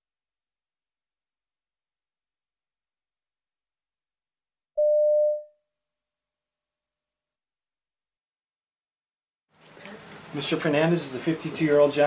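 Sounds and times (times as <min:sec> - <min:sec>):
electronic beep: 0:04.8 - 0:05.5.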